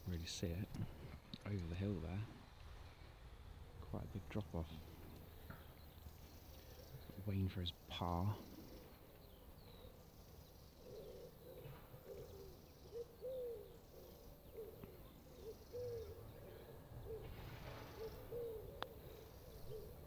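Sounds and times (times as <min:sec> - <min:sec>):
pigeon cooing: 0:10.7 - 0:20.0.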